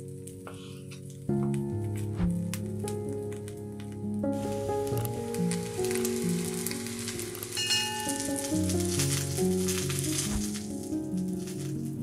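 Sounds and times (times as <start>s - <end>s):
background music: 0.0s - 12.0s
food sizzling in a frying pan: 4.3s - 12.0s.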